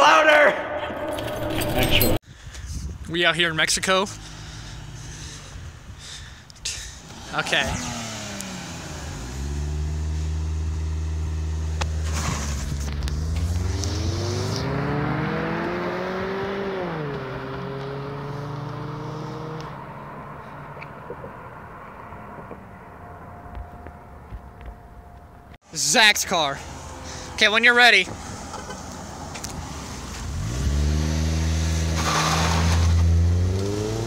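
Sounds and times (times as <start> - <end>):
car engine revving: 6.9 - 22.6, 28.2 - 34.0.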